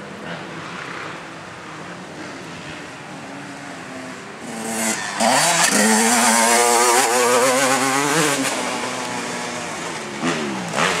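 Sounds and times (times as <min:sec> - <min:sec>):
motorcycle engine revving: 0:04.4 - 0:11.0.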